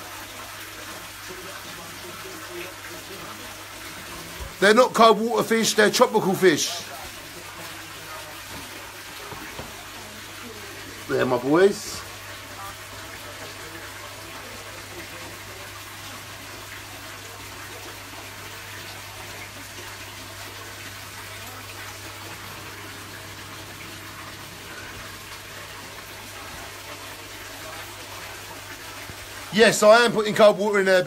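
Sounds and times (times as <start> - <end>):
water running into fish tank: 0.0 - 31.0.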